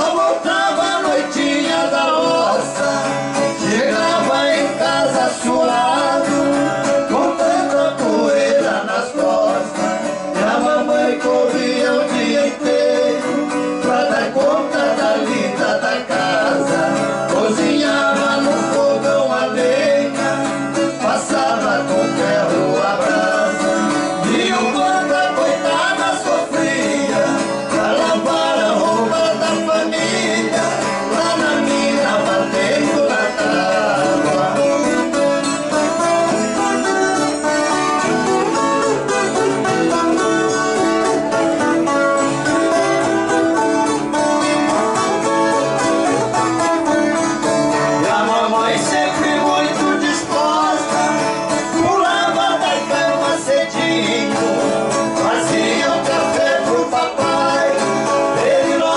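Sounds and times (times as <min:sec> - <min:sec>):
guitars strummed: 0:00.0 - 0:58.9
two men singing: 0:00.0 - 0:58.9.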